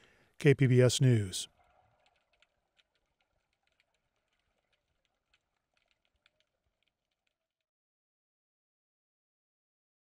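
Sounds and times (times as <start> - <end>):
faint clicks: 1.5 - 7.7.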